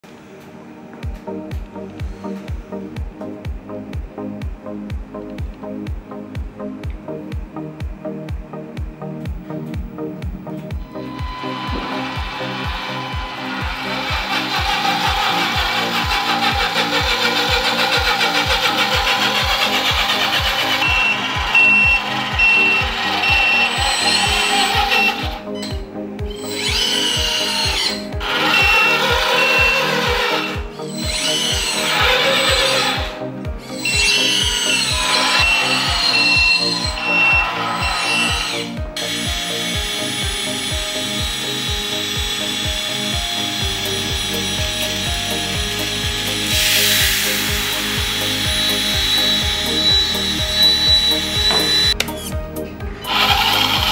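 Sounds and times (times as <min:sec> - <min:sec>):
music with beat and synth notes: 0:00.1 - 0:53.9.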